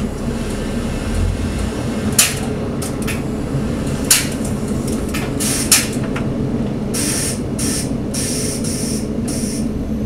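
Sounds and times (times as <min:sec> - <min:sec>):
diesel railcar engine rumble: 0:00.0 - 0:10.0
air brakes hissing: 0:05.4 - 0:06.0, 0:06.9 - 0:09.7.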